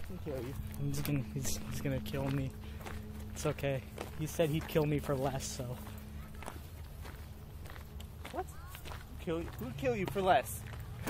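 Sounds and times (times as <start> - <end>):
soft footsteps: 0.0 - 11.0.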